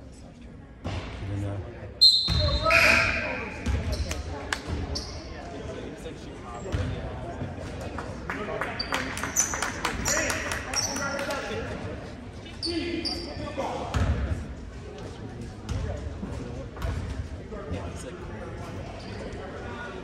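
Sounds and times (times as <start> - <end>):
voices of players and spectators: 0.0 - 20.0
sneaker squeaks: 2.0 - 5.4, 8.8 - 11.2, 12.4 - 13.6.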